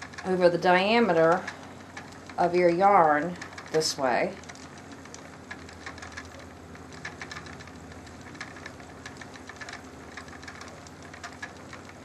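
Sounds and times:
light irregular clicking: 0.0 - 12.0
spinning wheel whirring: 0.0 - 12.0.

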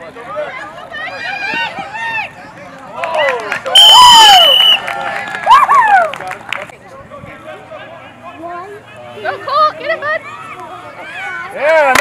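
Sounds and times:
spectators shouting and cheering: 0.2 - 6.4
referee's whistle: 3.8 - 4.9.

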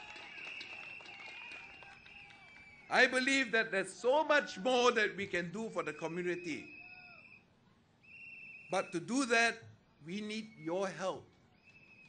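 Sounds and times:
man's amplified voice: 2.9 - 6.7, 8.7 - 11.2.

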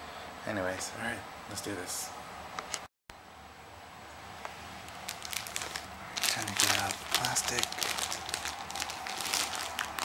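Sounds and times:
plastic film crinkling: 4.8 - 10.0.

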